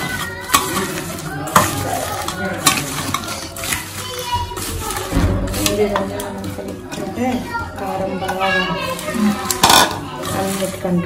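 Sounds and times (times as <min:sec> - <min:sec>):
onions rustling and crunching: 0:00.0 - 0:11.0
clinks against steel bowl: 0:08.3 - 0:10.8.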